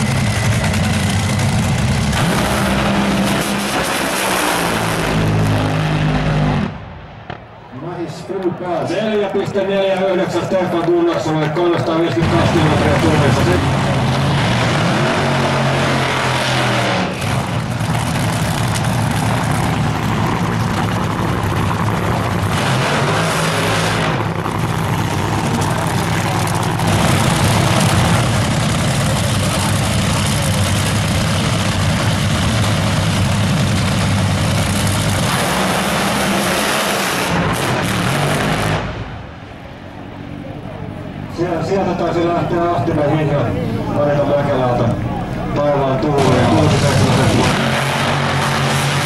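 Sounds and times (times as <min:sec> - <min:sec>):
racing car engines roaring: 0:00.0 - 0:49.0.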